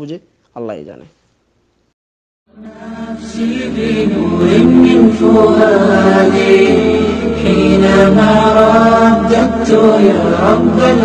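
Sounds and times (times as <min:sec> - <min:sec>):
person chanting long notes: 0:02.5 - 0:11.0.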